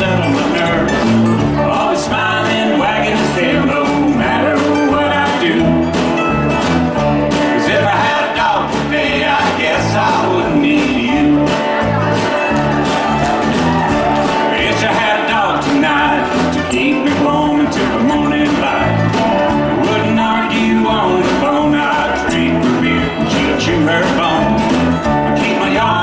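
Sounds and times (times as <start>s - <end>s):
acoustic guitar: 0.0s - 26.0s
drums: 0.0s - 26.0s
mandolin: 0.0s - 26.0s
upright bass: 0.0s - 26.0s.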